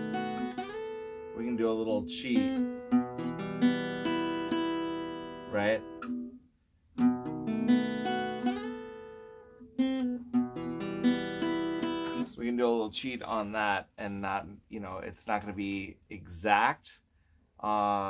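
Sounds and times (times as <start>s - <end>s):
acoustic guitar picking: 0.0s - 6.4s, 7.0s - 13.7s.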